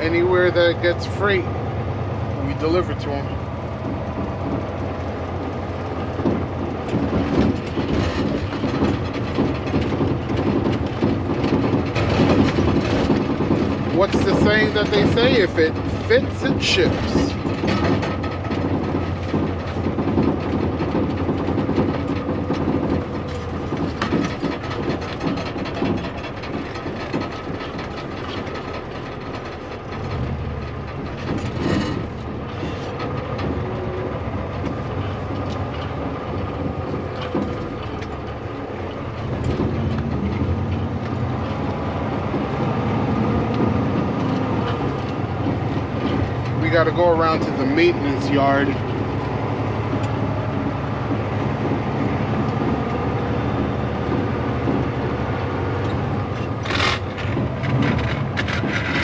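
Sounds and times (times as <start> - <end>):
diesel engine running: 0.0 - 59.0
truck cab rattling over gravel: 0.0 - 59.0.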